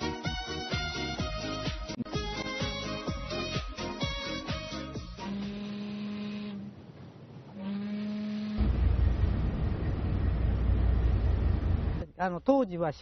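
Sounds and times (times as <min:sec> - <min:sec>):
low horn blasts: 0:04.1 - 0:06.8, 0:07.5 - 0:09.0
loud low rumble: 0:08.6 - 0:12.0.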